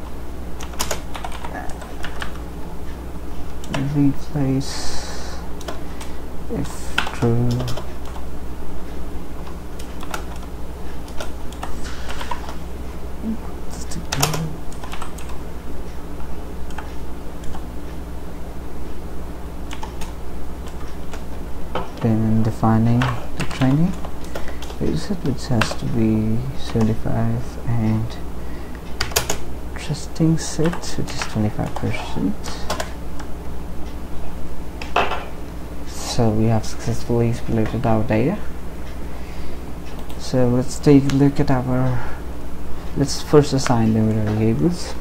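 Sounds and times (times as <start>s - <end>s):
steady low hum: 0.0s - 45.0s
keyboard typing: 0.6s - 2.5s, 5.6s - 5.8s, 6.5s - 8.2s, 9.4s - 12.6s, 13.2s - 15.4s, 16.6s - 17.7s, 19.7s - 27.0s, 29.0s - 29.5s, 30.5s - 33.3s.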